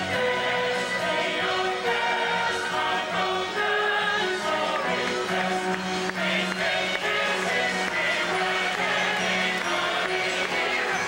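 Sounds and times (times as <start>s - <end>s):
ensemble singing as a chorus: 0.0s - 11.0s
pit orchestra: 0.0s - 11.0s.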